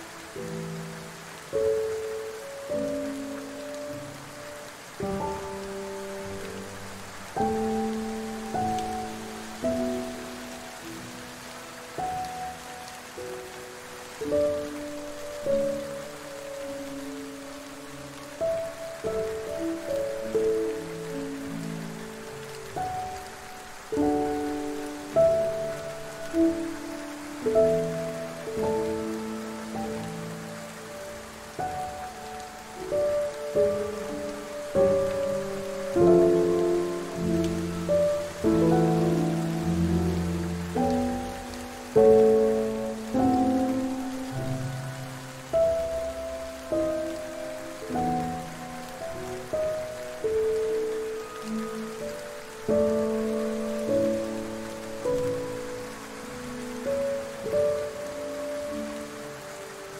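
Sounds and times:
falling rain hiss: 0.0s - 59.9s
soft slow piano: 0.0s - 59.9s.

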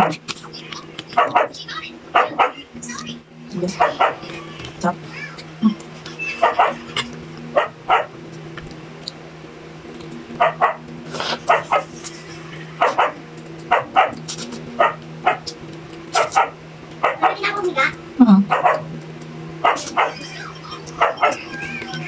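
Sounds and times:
steady low hum: 0.0s - 22.0s
dog barking: 1.2s - 1.6s, 2.2s - 2.6s, 3.7s - 4.3s, 6.4s - 6.8s, 7.6s - 8.1s, 10.4s - 10.8s, 11.5s - 11.9s, 12.8s - 14.2s, 14.8s - 15.4s, 16.2s - 17.5s, 18.5s - 18.9s, 19.6s - 20.2s, 21.0s - 21.4s.

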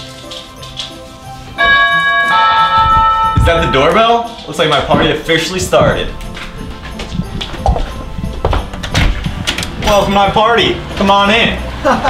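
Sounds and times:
quiet background music: 0.0s - 12.0s
two-note doorbell chime: 1.6s - 4.3s.

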